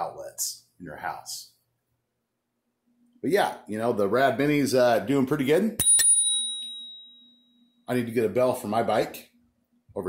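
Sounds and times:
bicycle bell ding: 0:05.8 - 0:07.7.

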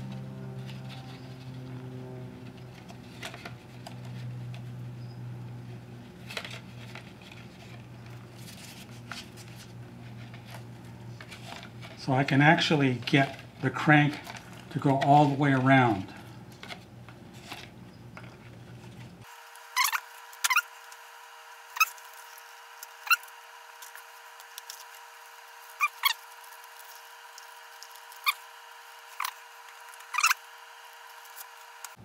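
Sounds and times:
faint steady hum: 0:00.0 - 0:32.0
cardboard model clicks and squeaks: 0:19.7 - 0:21.0, 0:21.7 - 0:25.0, 0:25.6 - 0:32.0.

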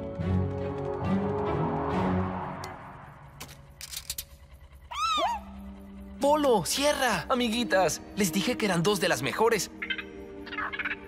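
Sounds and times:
background music: 0:00.0 - 0:11.0
cartoon creature squeaky chirp: 0:09.8 - 0:11.0.

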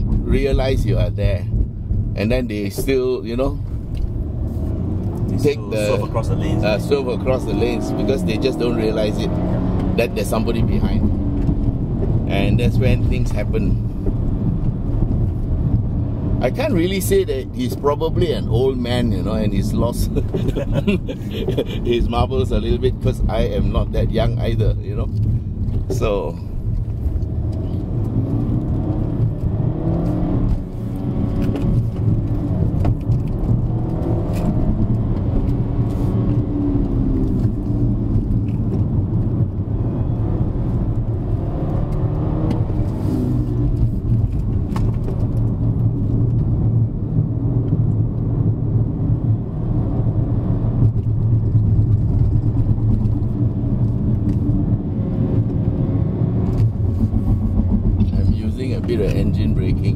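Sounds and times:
car engine accelerating: 0:00.0 - 0:59.9.

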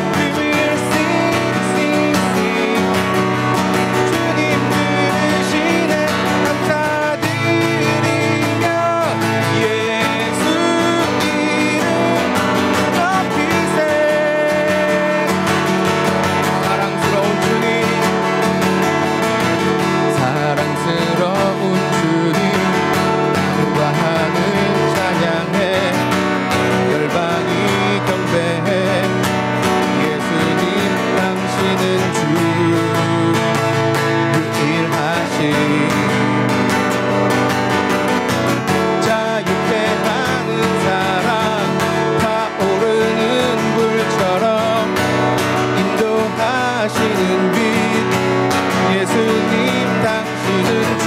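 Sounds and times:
man singing: 0:00.0 - 0:37.2, 0:38.5 - 0:51.0
acoustic guitar strumming: 0:00.0 - 0:51.0.

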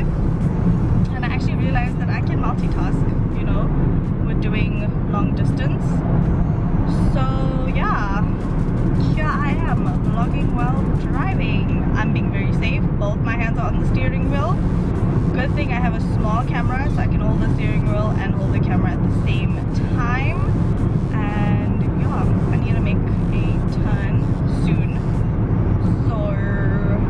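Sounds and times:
car road and engine noise: 0:00.0 - 0:27.0
woman talking: 0:01.1 - 0:06.0, 0:06.9 - 0:14.7, 0:15.3 - 0:25.2, 0:25.8 - 0:27.0.

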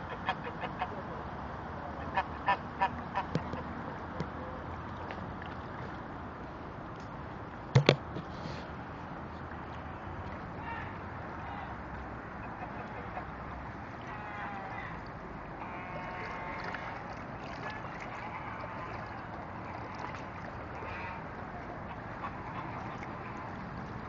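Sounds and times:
geese calling: 0:14.0 - 0:23.9.

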